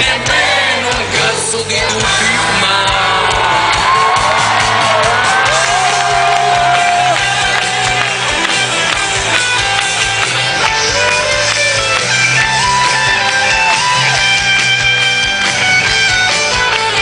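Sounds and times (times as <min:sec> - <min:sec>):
crowd cheering and shouting: 0:00.0 - 0:17.0
live rock band playing: 0:00.0 - 0:17.0.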